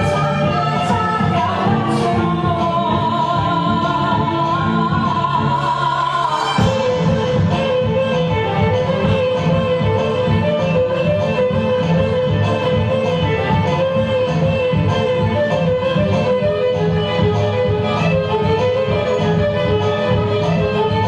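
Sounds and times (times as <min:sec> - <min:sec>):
live band music: 0:00.0 - 0:21.0
violin playing long held notes: 0:00.0 - 0:21.0.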